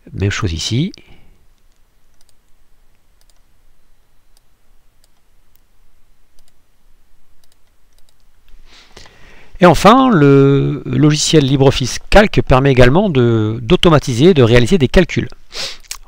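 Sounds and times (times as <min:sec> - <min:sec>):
computer mouse clicking: 0:01.6 - 0:02.6, 0:03.2 - 0:03.5, 0:04.3 - 0:05.7, 0:06.4 - 0:06.6, 0:07.4 - 0:08.3.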